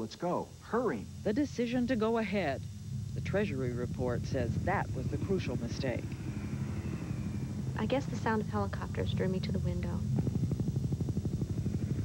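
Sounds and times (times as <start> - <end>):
helicopter rotor blades chopping: 0.7 - 12.0.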